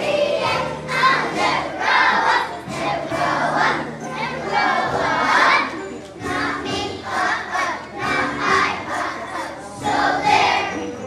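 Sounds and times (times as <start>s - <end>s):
children singing together: 0.0s - 11.0s.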